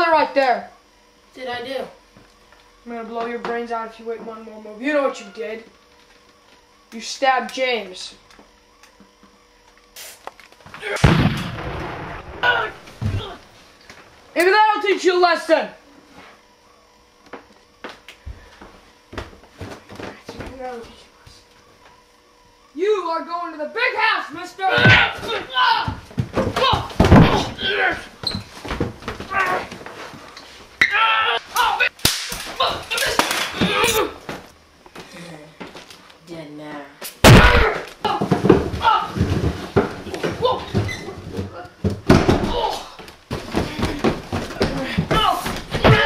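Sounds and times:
sharp crack: 32.0s - 33.5s, 37.2s - 38.0s.

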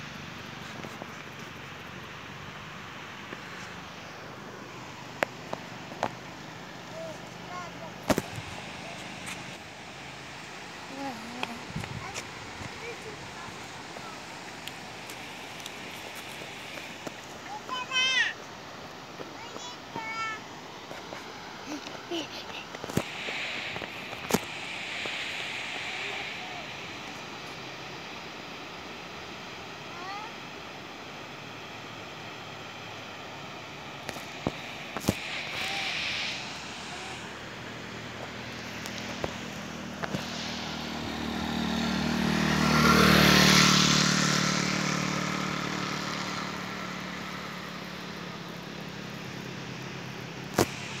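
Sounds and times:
vehicle passing on road: 0.0s - 18.2s, 20.6s - 29.8s, 31.0s - 51.0s
steady hiss: 0.0s - 51.0s.

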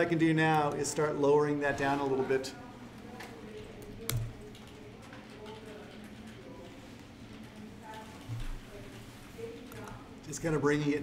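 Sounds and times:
keyboard keystrokes: 3.1s - 6.5s.

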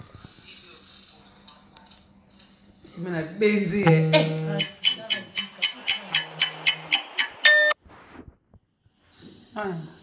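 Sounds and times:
rapid even ticking: 4.6s - 7.5s.

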